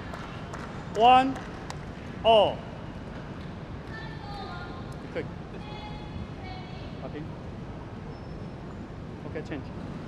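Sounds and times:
indoor arena background hum: 0.0s - 10.0s.

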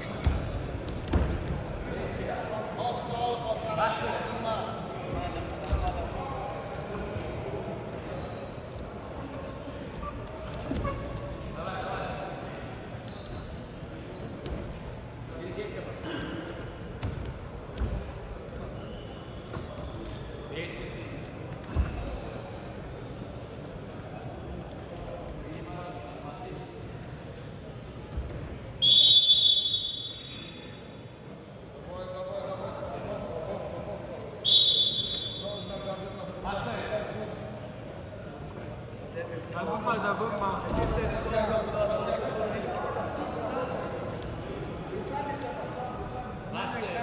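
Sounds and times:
faint voices in hall: 0.0s - 47.0s
referee's whistle blast: 28.8s - 30.6s, 34.4s - 35.6s.

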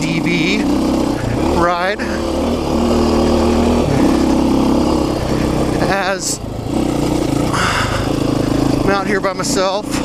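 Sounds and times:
dirt bike engine running: 0.0s - 10.0s.

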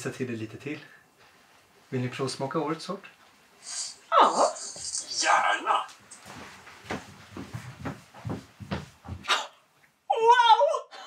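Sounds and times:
footsteps on hard floor: 5.9s - 9.3s.

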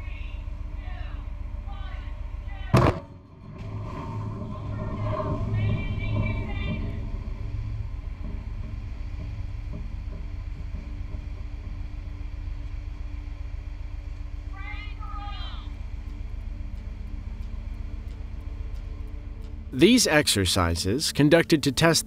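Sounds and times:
low rumble: 0.0s - 21.2s
steady low hum: 0.0s - 22.0s
underwater explosion boom: 2.7s - 9.4s.

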